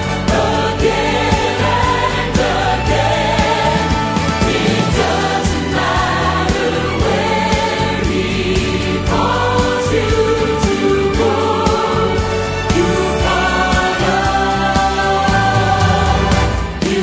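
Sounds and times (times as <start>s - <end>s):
choir singing: 0.0s - 17.0s
instrumental accompaniment: 0.0s - 17.0s.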